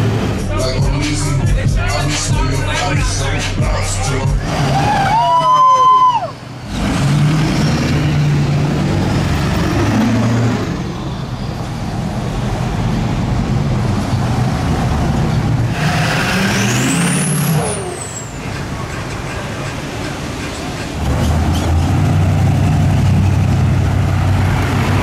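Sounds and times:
trucks driving past: 0:00.0 - 0:25.0.

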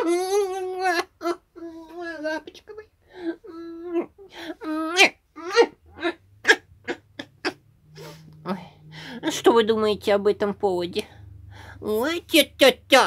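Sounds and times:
woman cooing: 0:00.0 - 0:06.2.

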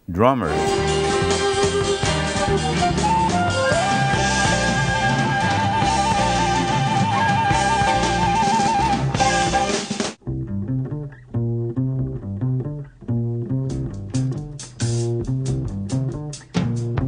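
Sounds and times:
jazz band playing: 0:00.5 - 0:10.0
low double bass notes: 0:10.2 - 0:17.0.

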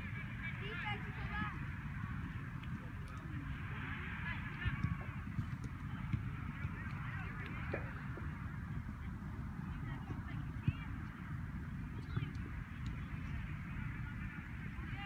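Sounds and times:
wind rumble on microphone: 0:00.0 - 0:15.0.

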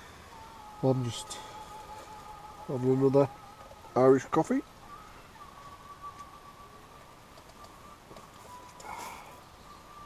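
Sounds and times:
faint thin whine: 0:00.0 - 0:10.0.

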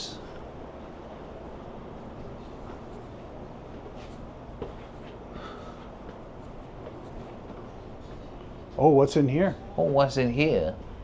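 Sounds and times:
steady low hum: 0:00.0 - 0:11.0
shuffles: 0:01.4 - 0:08.9.

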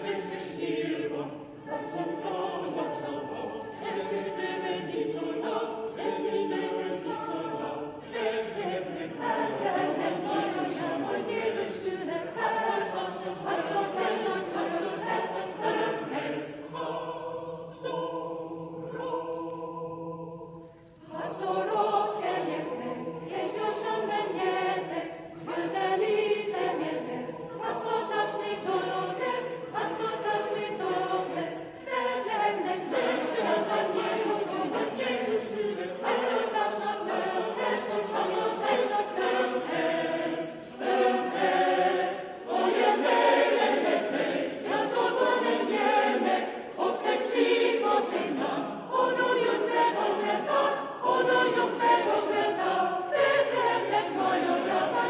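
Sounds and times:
mixed choir singing a carol: 0:00.0 - 0:55.0.

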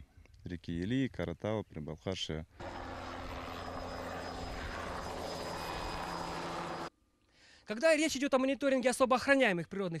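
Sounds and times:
helicopter engine and rotor: 0:02.6 - 0:06.9.

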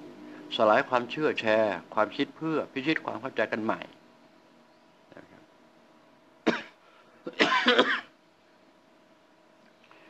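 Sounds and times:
man coughing: 0:06.4 - 0:08.1.

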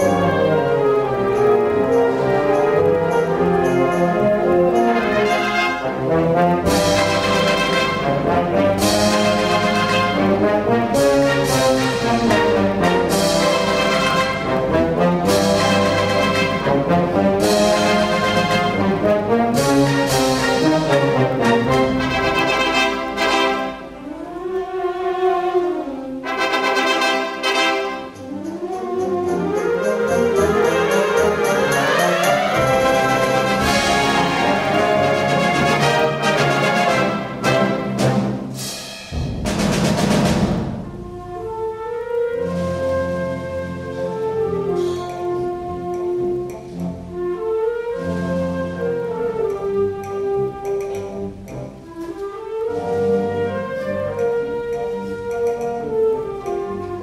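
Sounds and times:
wind band playing a pasodoble: 0:00.0 - 0:57.0.

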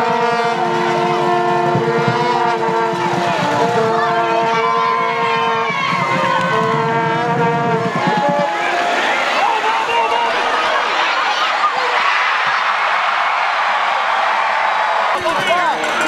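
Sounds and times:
long held horn notes: 0:00.0 - 0:09.3
crowd voices: 0:00.0 - 0:16.0.

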